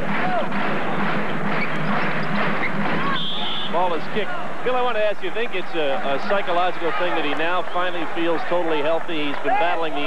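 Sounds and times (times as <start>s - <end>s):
arena crowd din: 0.0s - 10.0s.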